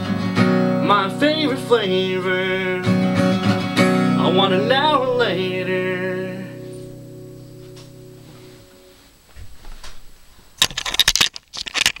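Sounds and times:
acoustic guitar chord ringing: 0.0s - 9.1s.

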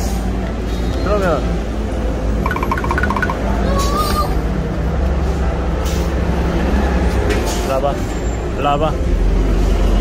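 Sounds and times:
air brake hiss: 5.8s - 6.2s.

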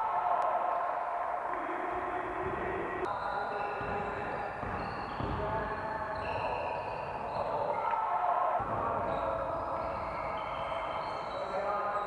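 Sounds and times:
basketball bouncing on floor: 3.8s - 7.4s.

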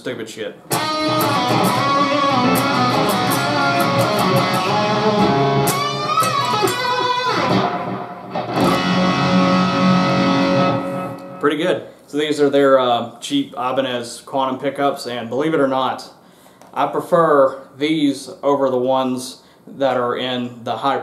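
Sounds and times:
electric guitar with string bends: 0.7s - 11.4s
guitar chord ringing: 0.7s - 11.4s.

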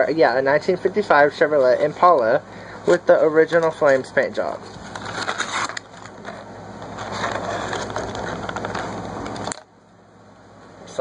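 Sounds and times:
blister packaging being torn open: 4.8s - 9.6s.

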